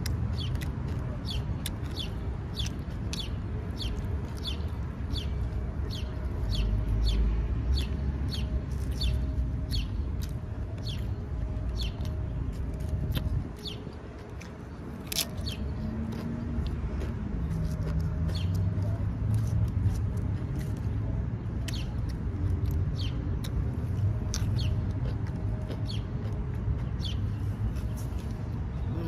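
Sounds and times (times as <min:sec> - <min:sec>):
chewing with wet mouth smacks: 0:00.0 - 0:06.6, 0:07.7 - 0:11.2, 0:11.8 - 0:29.0.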